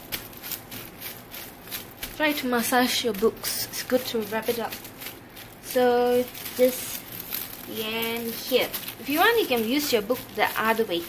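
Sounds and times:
plastic film crinkling: 0.0s - 11.0s.

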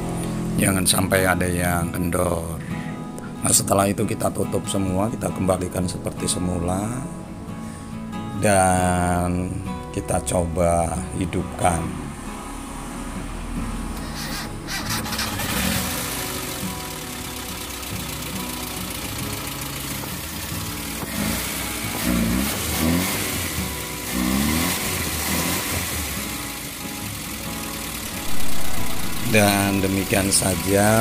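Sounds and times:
petrol engine starting and running: 12.1s - 31.0s.

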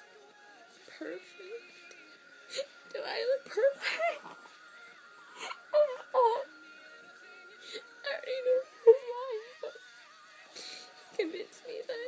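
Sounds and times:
woman sobbing: 2.5s - 4.6s, 5.2s - 6.6s, 7.6s - 9.8s.

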